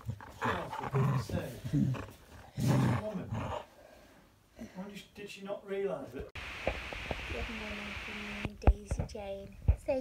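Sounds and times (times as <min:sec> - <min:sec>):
dog growling in play: 0:00.0 - 0:03.7.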